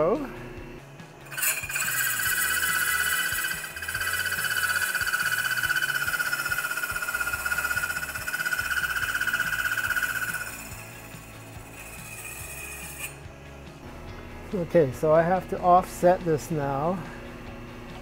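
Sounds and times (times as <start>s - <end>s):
slotting saw cutting metal: 1.3s - 13.2s.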